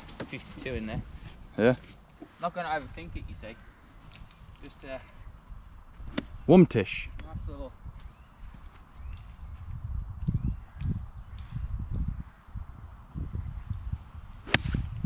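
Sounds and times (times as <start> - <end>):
wind rumble on microphone: 0.6 - 1.5, 2.8 - 15.0.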